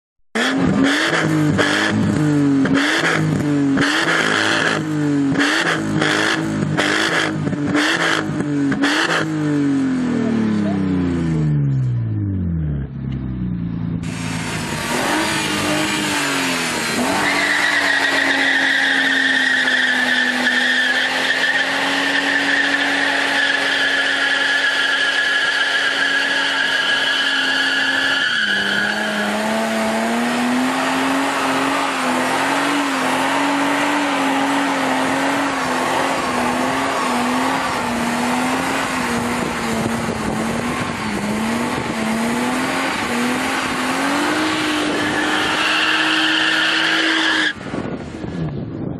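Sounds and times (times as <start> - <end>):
car engine revving: 0.4 - 48.0
tyres squealing: 16.9 - 29.7.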